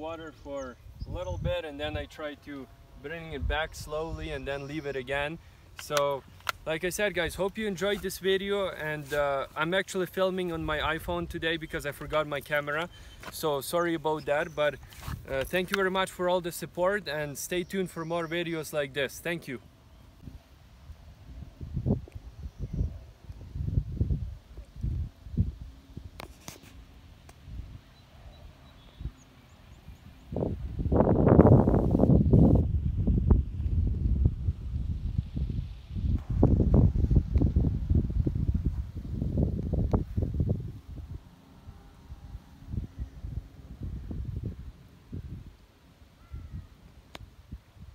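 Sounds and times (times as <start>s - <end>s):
wind buffeting microphone: 0.8s - 2.1s, 21.0s - 26.3s, 29.8s - 41.4s, 42.1s - 45.6s.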